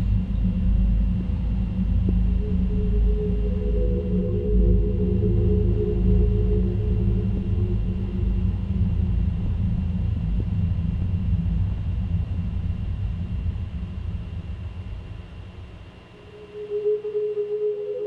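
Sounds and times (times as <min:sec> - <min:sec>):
low droning rumble: 0:00.0 - 0:16.3
steady humming tones: 0:00.0 - 0:18.0.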